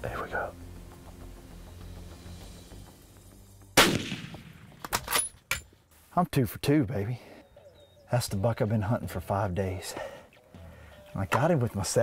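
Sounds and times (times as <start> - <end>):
rifle shot: 3.8 - 5.3.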